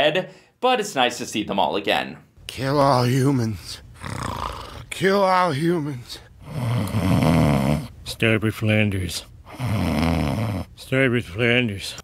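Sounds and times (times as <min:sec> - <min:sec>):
cartoon character snoring: 0:04.0 - 0:04.9, 0:06.4 - 0:08.0, 0:09.5 - 0:10.8.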